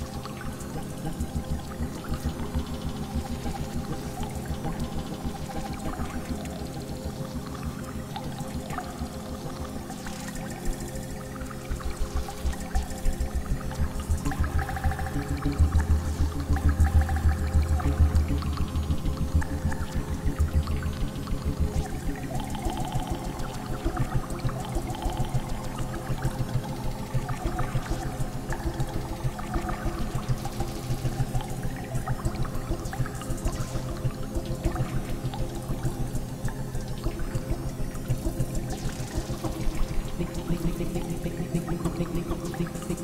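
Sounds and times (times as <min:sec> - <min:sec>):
pulsing synthesizer bass sequence: 0:00.0 - 0:43.0
sustained synthesizer chords: 0:00.0 - 0:43.0.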